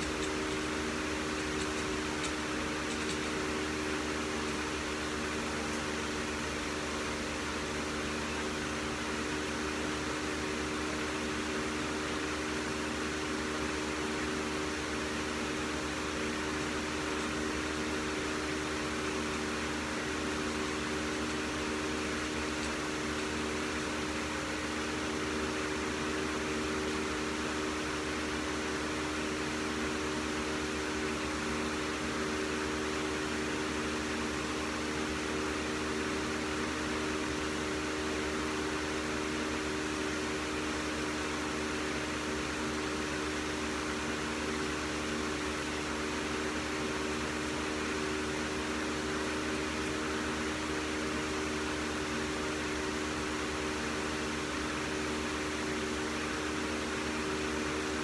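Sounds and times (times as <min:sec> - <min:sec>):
steady machine hum with tones: 0:00.0 - 0:58.0.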